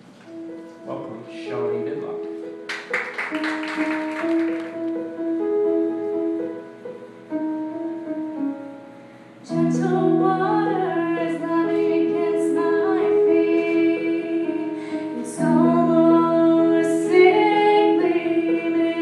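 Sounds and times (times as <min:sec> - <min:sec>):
electronic keyboard piano chords: 0:00.0 - 0:19.0
woman singing: 0:09.5 - 0:19.0.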